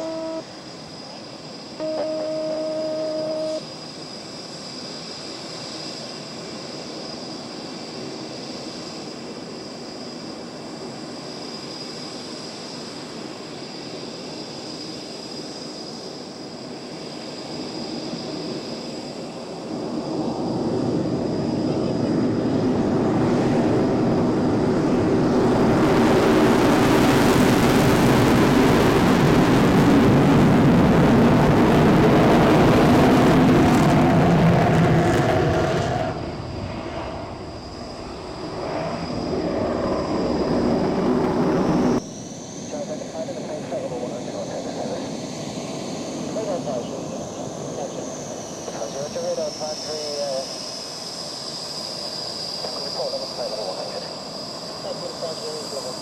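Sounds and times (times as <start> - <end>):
aircraft engine passing: 0.0 - 56.0.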